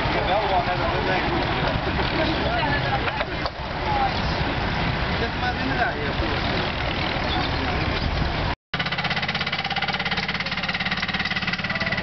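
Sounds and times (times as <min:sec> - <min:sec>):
people talking: 0:00.0 - 0:08.0, 0:09.9 - 0:12.0
tractor engine running: 0:00.0 - 0:12.0.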